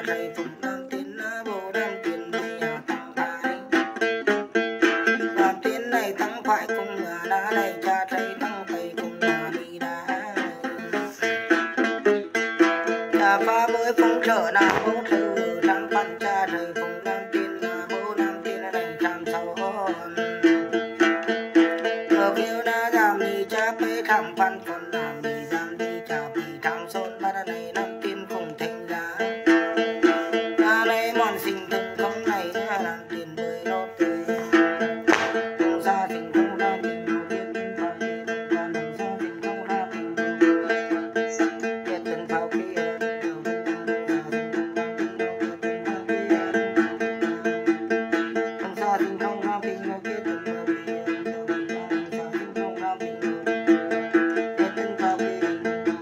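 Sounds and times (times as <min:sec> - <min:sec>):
plucked lute: 0:00.0 - 0:56.0
woman chanting: 0:13.2 - 0:20.2, 0:22.1 - 0:29.0, 0:30.6 - 0:44.3.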